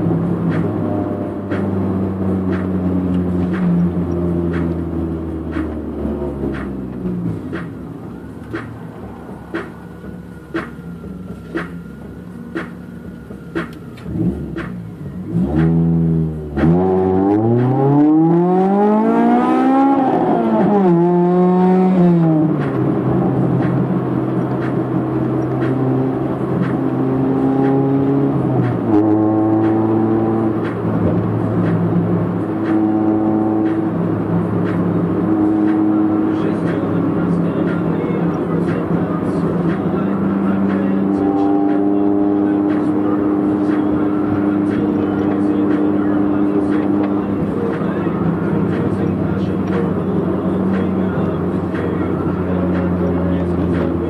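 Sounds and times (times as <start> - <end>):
car engine droning at cruise: 0.0 - 54.0
car engine revving: 0.0 - 54.0.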